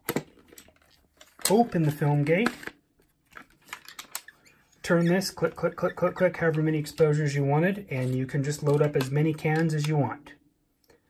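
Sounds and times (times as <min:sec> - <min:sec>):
plastic clicks and knocks: 0:08.0 - 0:10.0.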